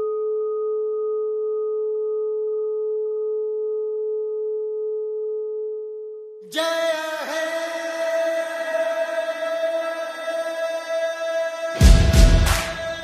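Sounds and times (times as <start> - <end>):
ringing bell-like tone: 0.0 - 2.3.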